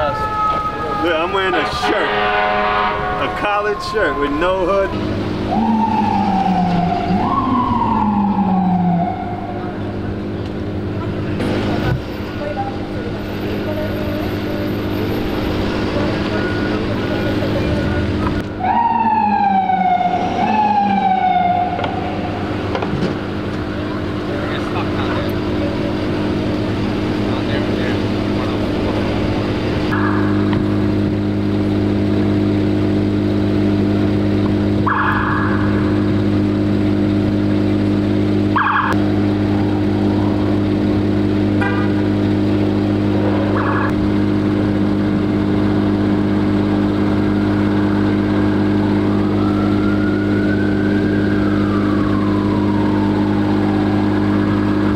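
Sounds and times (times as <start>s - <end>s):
siren rising and falling: 0.0s - 11.1s, 14.0s - 54.9s
idling vehicle engines drone: 0.0s - 54.9s.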